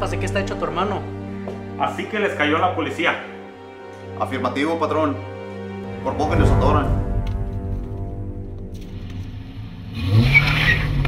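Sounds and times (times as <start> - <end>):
car engine starting and revving: 9.0 - 11.0.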